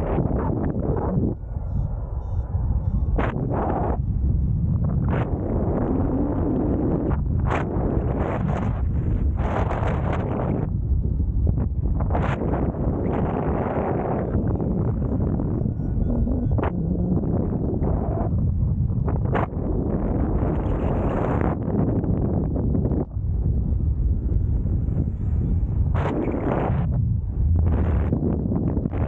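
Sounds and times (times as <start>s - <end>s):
sharp wind buffets: 0.0s - 29.0s
wind rushing over microphone: 0.0s - 29.0s.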